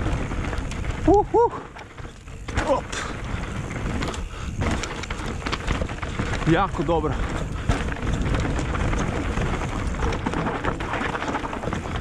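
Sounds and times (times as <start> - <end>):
bike knocking and rattling: 0.0 - 12.0
bike tyres crunching over stones: 0.0 - 12.0
wind rumble on microphone: 0.0 - 12.0.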